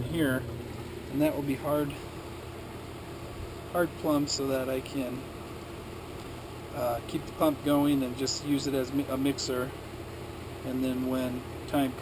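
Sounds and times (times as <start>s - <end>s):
aquarium pumps humming: 0.0s - 12.0s.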